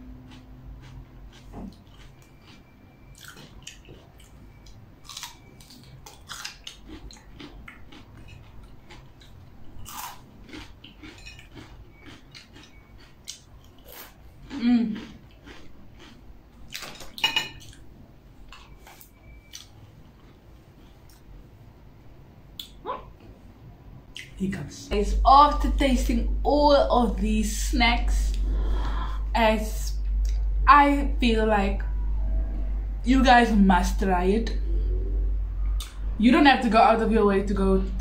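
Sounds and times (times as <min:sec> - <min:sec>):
chewing: 0:00.0 - 0:17.9, 0:18.5 - 0:21.3.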